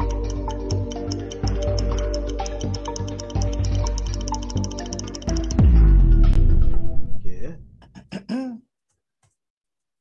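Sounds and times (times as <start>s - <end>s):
quiz countdown music: 0.0s - 6.6s
person clearing throat: 7.8s - 8.7s.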